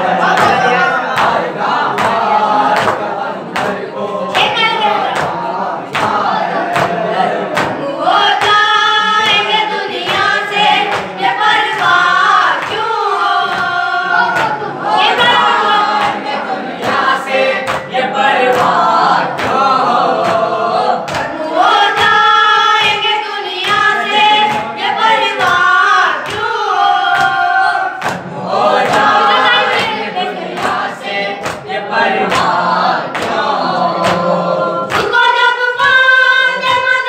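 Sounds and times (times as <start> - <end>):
male voices chanting in chorus: 0.0 - 23.0, 23.6 - 36.8
lead reciter chanting: 0.0 - 37.0.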